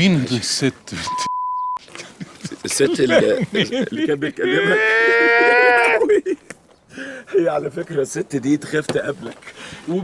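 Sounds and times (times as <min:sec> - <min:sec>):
man talking: 0:00.0 - 0:01.3, 0:02.4 - 0:06.0, 0:07.3 - 0:10.0.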